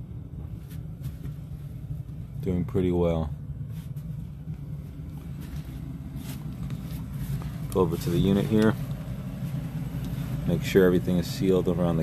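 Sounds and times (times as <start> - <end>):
furnace running: 0.0 - 12.0.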